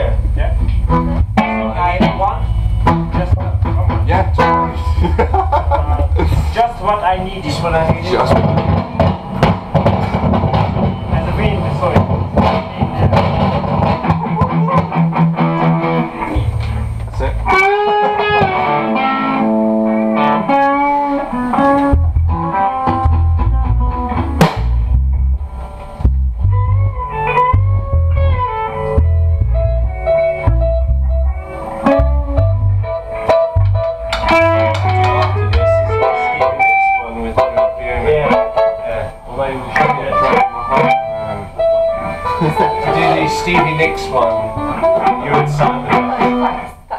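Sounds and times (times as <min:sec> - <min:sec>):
bass guitar playing: 0:00.0 - 0:46.9
electric guitar playing: 0:00.0 - 0:46.9.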